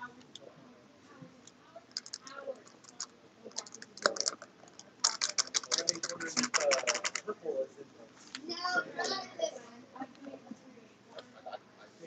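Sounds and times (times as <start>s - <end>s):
stick stirring resin in a cup: 1.9s - 7.2s.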